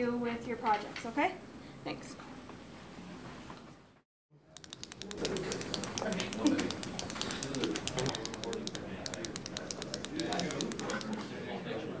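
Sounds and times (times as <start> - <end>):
typing on a computer keyboard: 4.6 - 11.3
murmur of voices: 5.0 - 12.0.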